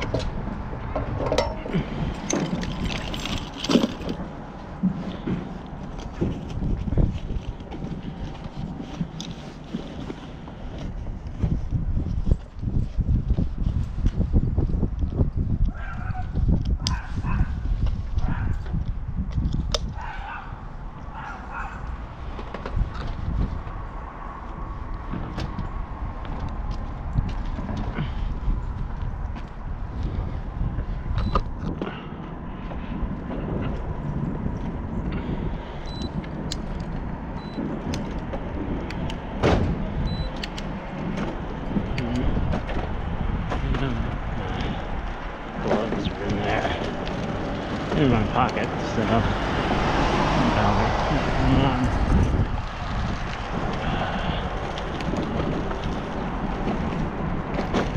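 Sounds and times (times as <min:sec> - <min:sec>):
wind buffeting microphone: 0:00.0 - 0:57.9
bicycle clicks and rattles: 0:01.2 - 0:04.3, 0:35.8 - 0:39.2, 0:54.5 - 0:57.9.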